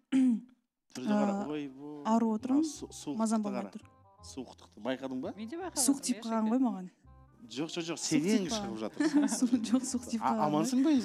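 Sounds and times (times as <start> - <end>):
woman speaking into a microphone: 1.0 - 1.5, 5.8 - 6.9, 8.4 - 11.0
spoken syllable: 1.0 - 1.9, 7.6 - 11.0.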